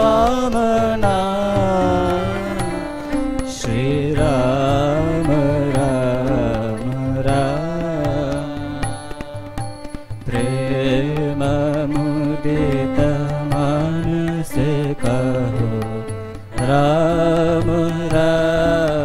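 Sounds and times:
men singing devotional song: 0.0s - 9.6s, 10.2s - 19.0s
harmonium: 0.0s - 19.0s.

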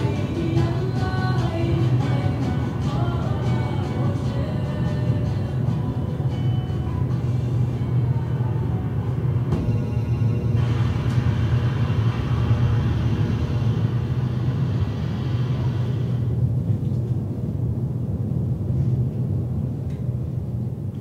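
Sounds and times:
low steady rumble: 0.0s - 21.0s
hiss: 11.7s - 16.3s.

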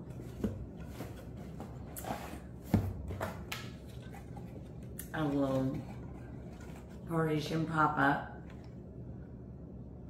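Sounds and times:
cardboard rustling: 0.0s - 7.2s.

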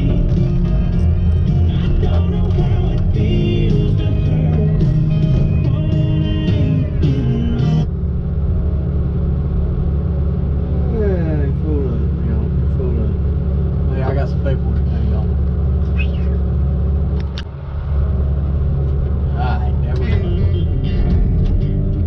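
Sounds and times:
diesel engine drone: 0.0s - 22.0s.

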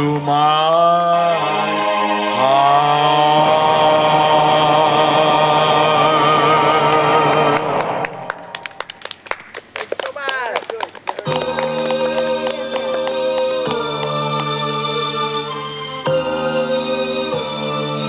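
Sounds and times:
man singing with vibrato: 0.0s - 8.3s, 11.3s - 15.2s
backing track: 10.1s - 18.0s
electronic organ chord: 11.3s - 18.0s.

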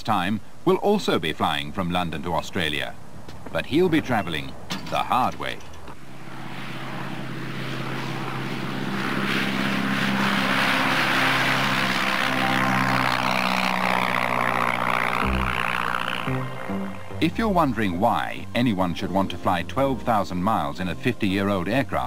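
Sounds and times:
propeller plane engine drone: 0.0s - 22.0s.

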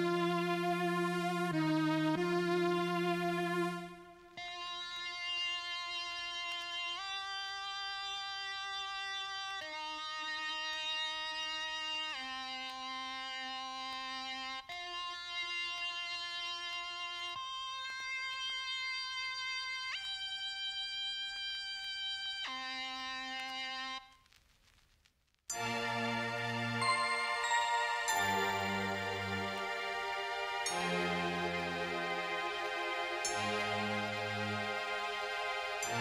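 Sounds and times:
synthesizer lead melody: 25.5s - 36.0s.

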